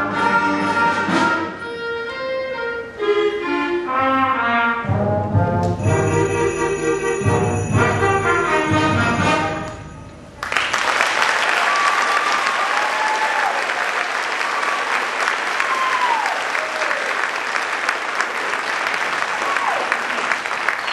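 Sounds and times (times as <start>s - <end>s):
audience applauding: 10.4s - 20.9s.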